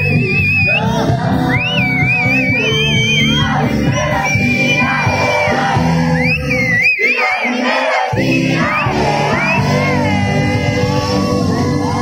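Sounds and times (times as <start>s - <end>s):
live band playing: 0.0s - 6.2s, 8.2s - 12.0s
crowd shouting and singing along: 0.0s - 12.0s.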